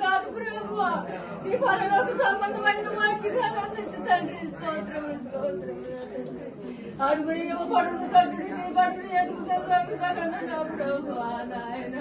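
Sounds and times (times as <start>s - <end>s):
women praying aloud: 0.0s - 12.0s.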